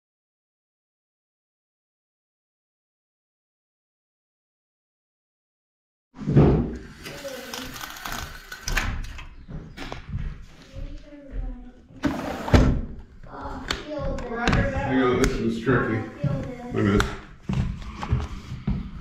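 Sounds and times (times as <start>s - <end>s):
indistinct voices: 6.9s - 8.9s, 10.6s - 19.0s.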